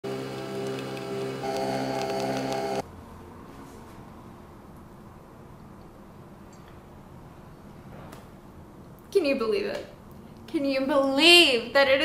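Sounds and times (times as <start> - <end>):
coffee machine humming: 0.0 - 2.8.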